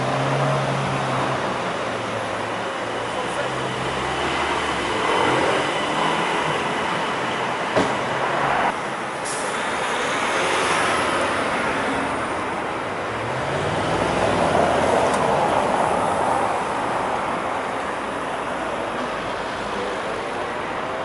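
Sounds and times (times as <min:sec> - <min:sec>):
city street traffic: 0:00.0 - 0:21.0.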